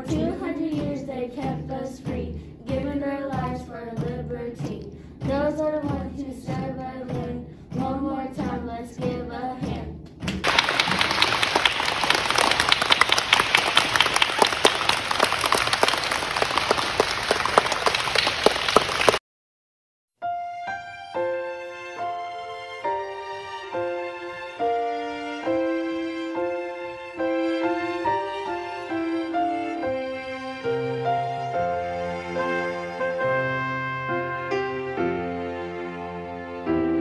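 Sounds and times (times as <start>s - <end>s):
children singing: 0.0s - 9.9s
children clapping: 10.3s - 19.2s.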